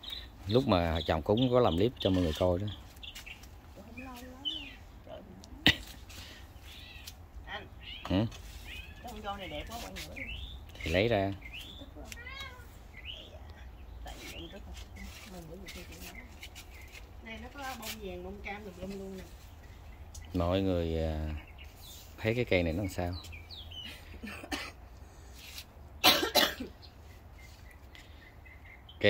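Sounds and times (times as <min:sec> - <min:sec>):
cat meowing: 0:12.0 - 0:12.8
person coughing: 0:24.2 - 0:24.8, 0:26.0 - 0:26.8.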